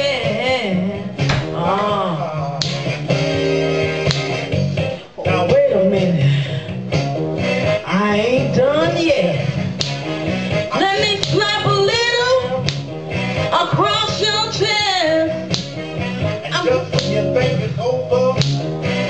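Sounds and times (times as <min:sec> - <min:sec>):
woman singing into a microphone: 0:00.0 - 0:02.4, 0:07.9 - 0:09.6, 0:10.7 - 0:12.6, 0:13.5 - 0:15.4
blues backing track with guitar: 0:00.0 - 0:19.0.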